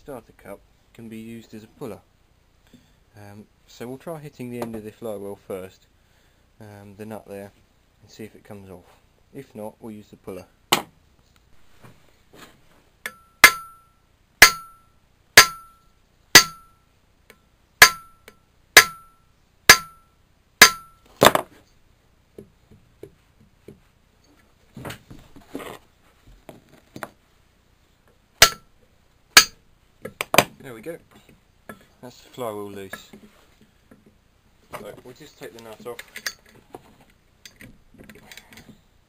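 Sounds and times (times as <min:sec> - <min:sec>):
quiet handling sounds: 0:11.1 - 0:13.1, 0:21.0 - 0:28.2, 0:29.8 - 0:39.0
hammer striking metal nut: 0:13.0 - 0:15.8, 0:16.4 - 0:16.8, 0:17.8 - 0:21.0, 0:28.4 - 0:28.7, 0:29.4 - 0:29.6.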